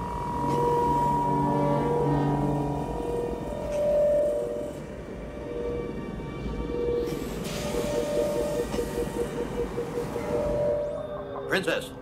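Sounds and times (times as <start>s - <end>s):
orchestral music: 0.0s - 12.0s.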